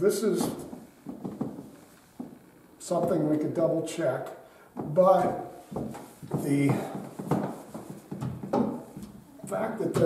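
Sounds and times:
wooden knocks and clatters: 0.6s - 2.3s, 4.8s - 9.2s.

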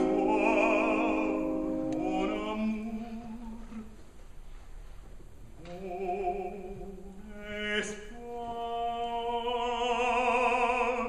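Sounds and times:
faint concert hall background: 0.0s - 11.0s.

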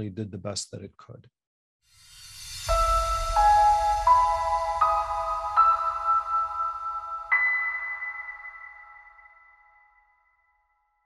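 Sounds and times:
bell-like chime note: 2.1s - 10.9s.

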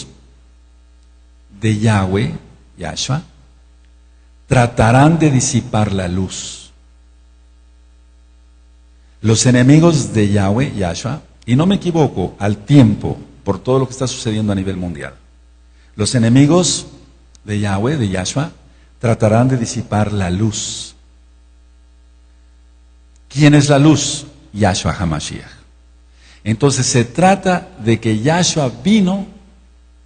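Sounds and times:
electrical mains hum: 0.0s - 30.0s.

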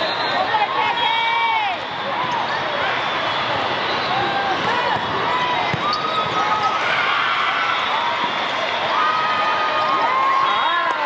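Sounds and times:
hubbub of voices in hall: 0.0s - 11.0s
shoes squeaking on court: 5.0s - 6.8s.

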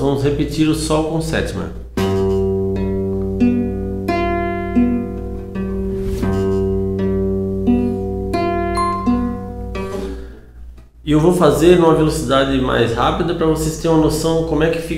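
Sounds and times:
classical guitar fingerpicked arpeggio: 2.0s - 5.8s, 6.4s - 10.3s.

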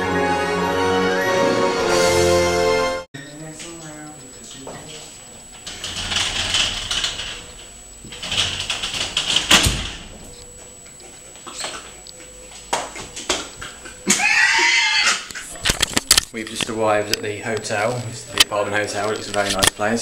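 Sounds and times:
sliding door on track: 5.6s - 10.3s.

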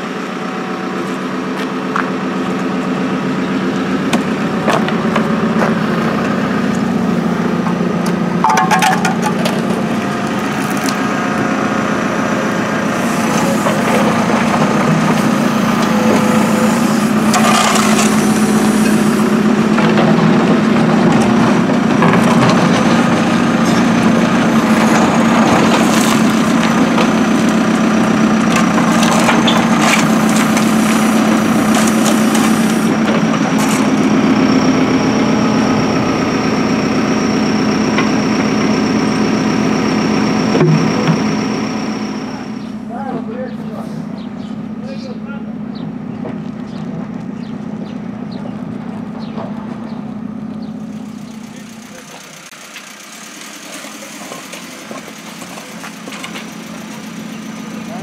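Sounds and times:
diesel engine under load: 0.0s - 58.0s
bucket scraping and crunching: 8.4s - 11.2s, 13.0s - 34.2s, 53.2s - 58.0s.

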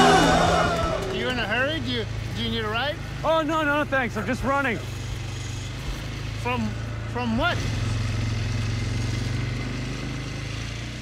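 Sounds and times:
quad bike engine running: 0.0s - 11.0s.

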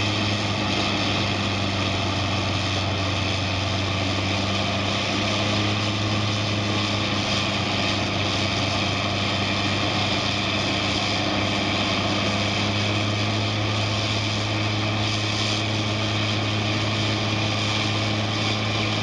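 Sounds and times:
grinder engine low hum: 0.0s - 19.0s.

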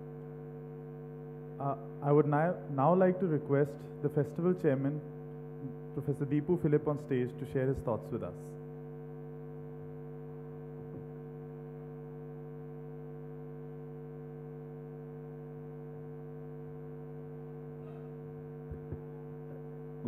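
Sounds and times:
electrical mains hum: 0.0s - 20.0s.

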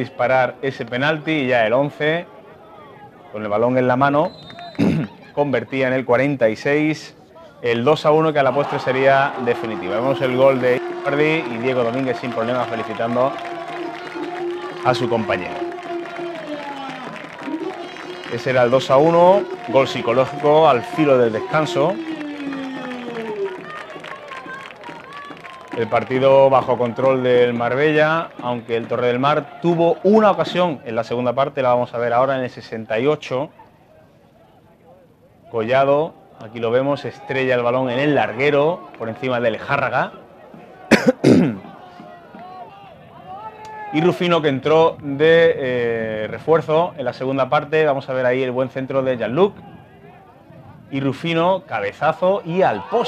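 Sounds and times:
faint crowd background: 0.0s - 53.0s
person coughing: 4.8s - 5.2s, 40.9s - 41.6s
distant player shouts: 8.2s - 30.5s.

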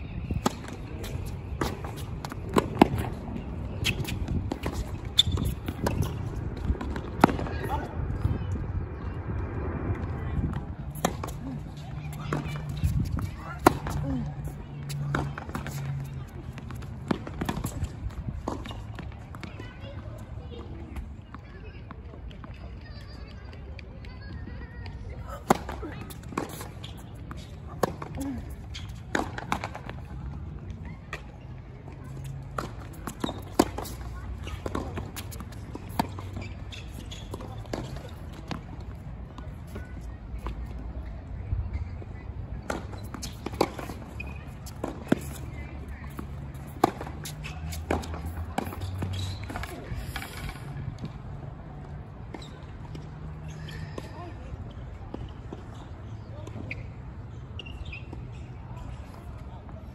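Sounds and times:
tennis balls bouncing on hard court: 0.3s - 7.8s, 32.0s - 40.8s, 42.6s - 51.2s
tennis balls struck by rackets: 0.3s - 7.8s, 32.3s - 39.4s, 42.6s - 51.2s.

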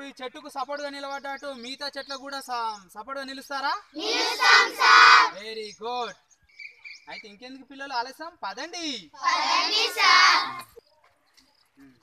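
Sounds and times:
children calling out together: 4.0s - 5.4s, 9.2s - 10.8s.

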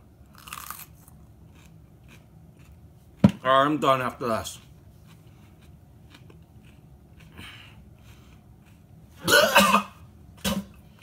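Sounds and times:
man coughing and gagging: 9.2s - 10.7s.

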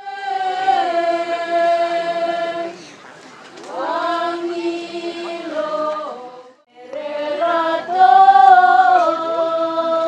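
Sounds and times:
voices singing unaccompanied: 0.0s - 10.0s.

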